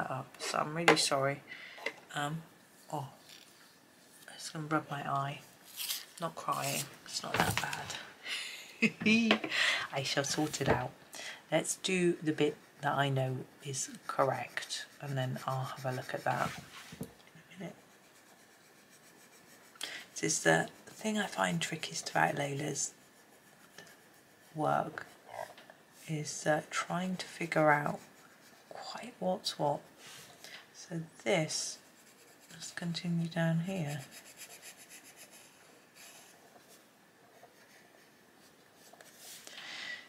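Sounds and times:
pencil scratching on paper: 11.8 - 16.8, 17.6 - 25.5, 26.3 - 30.4, 31.5 - 39.4.

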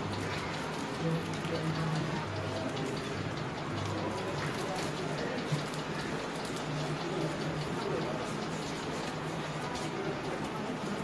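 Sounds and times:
crackling patter: 0.0 - 11.0.

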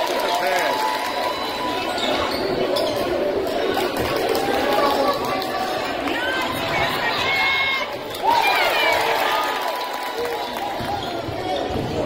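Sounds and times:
crowd chatter in gym: 0.0 - 12.0.

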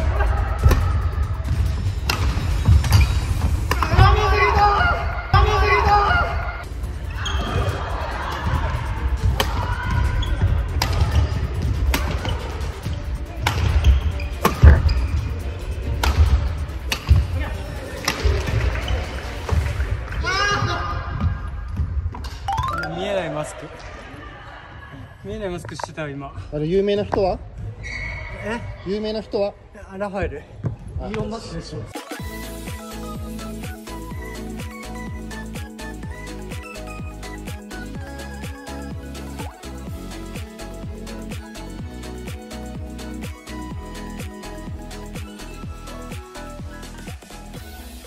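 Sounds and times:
background music: 0.0 - 20.3, 22.2 - 23.8, 31.9 - 48.0
racket smacking shuttlecock: 2.0 - 4.0, 10.7 - 12.4, 13.4 - 14.9, 16.0 - 17.3, 18.0 - 18.6.

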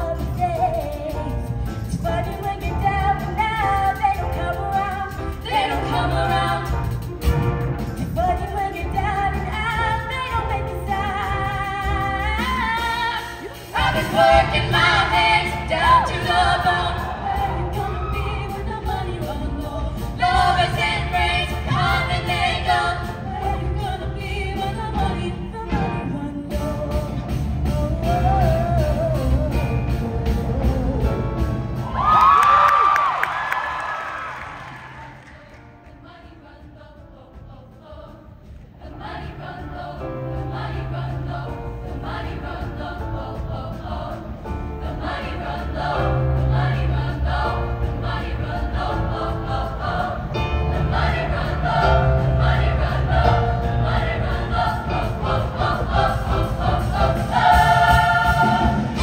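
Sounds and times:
live band music: 0.0 - 36.3, 36.9 - 59.0
female choir singing: 2.1 - 6.9, 8.5 - 25.9, 33.2 - 59.0
crowd whooping and cheering: 31.8 - 35.4.

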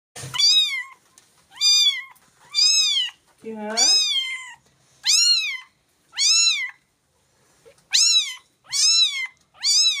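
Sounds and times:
cat meowing: 0.3 - 3.2, 3.8 - 6.8, 7.9 - 10.0.

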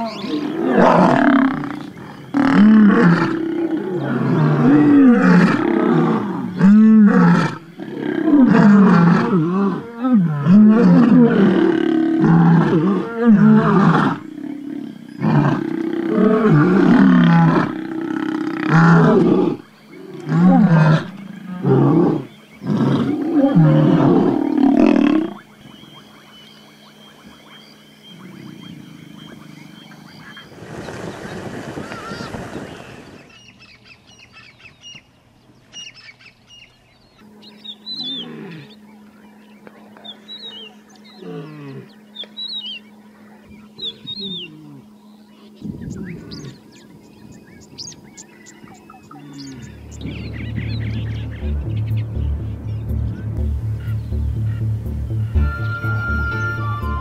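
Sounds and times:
lion roaring and grunting: 0.0 - 25.4, 37.9 - 38.8, 39.8 - 42.0
birds chirping faintly: 0.0 - 57.0.

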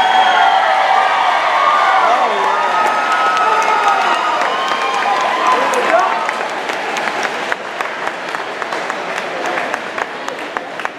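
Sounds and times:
crowd applauding: 0.0 - 10.9
crowd voices: 0.0 - 10.9.

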